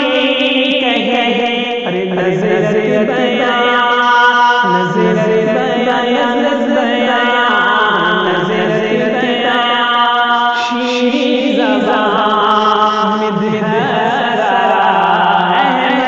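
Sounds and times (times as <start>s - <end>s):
man singing devotional chant: 0.0s - 16.0s.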